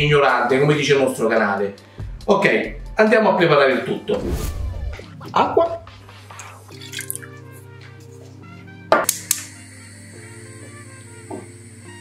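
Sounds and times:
background music: 0.0 - 12.0
water poured into saucepan: 6.3 - 7.3.

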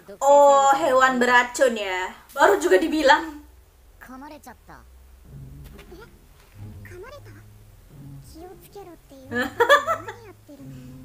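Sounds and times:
cartoon dialogue voices: 0.0 - 5.0, 5.8 - 6.2, 6.8 - 7.6, 8.2 - 10.8
low steady hum: 0.0 - 11.0.

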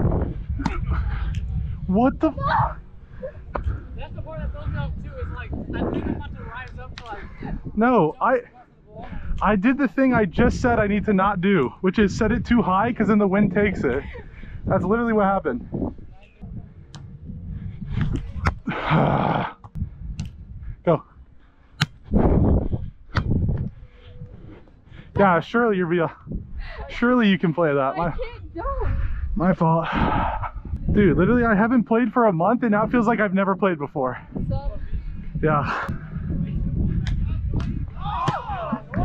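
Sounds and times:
wind rumbling on microphone: 0.0 - 8.2, 8.9 - 27.1, 28.0 - 32.0, 34.1 - 39.0
hand slapping volleyball: 37.0 - 38.5.

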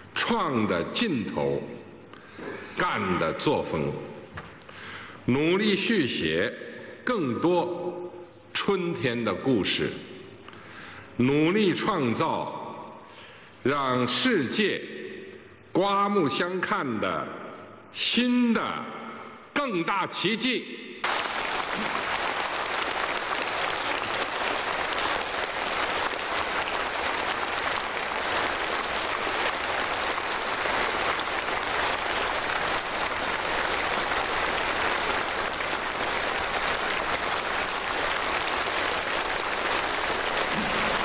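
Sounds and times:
audience applauding: 21.0 - 41.0.

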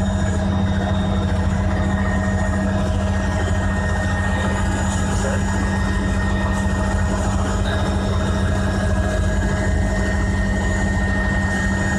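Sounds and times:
light aircraft engine droning: 0.0 - 11.9.

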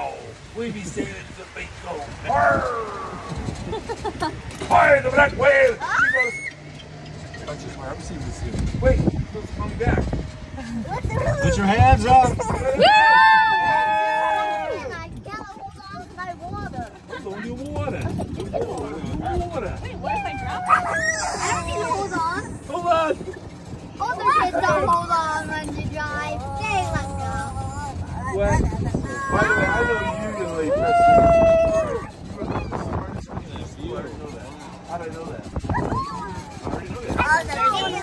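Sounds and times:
moving cart rumble: 0.0 - 38.0
people chattering: 10.4 - 38.0.

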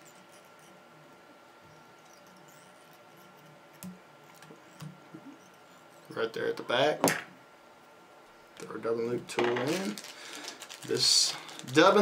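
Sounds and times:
faint handling noise: 8.2 - 12.0.

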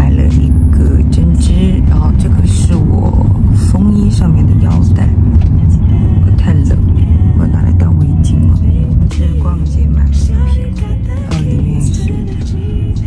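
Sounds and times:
car cabin rumble: 0.0 - 13.0.

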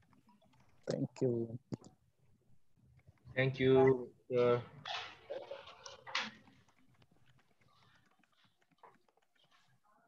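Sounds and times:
faint clicks and ticks: 0.0 - 3.7, 4.4 - 10.0.

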